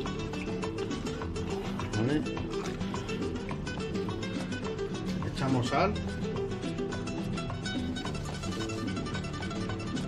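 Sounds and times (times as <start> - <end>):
background music quick rhythm: 0.0 - 10.0.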